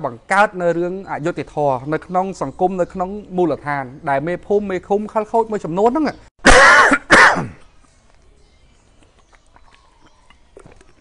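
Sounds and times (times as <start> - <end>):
man coughing: 6.4 - 7.6.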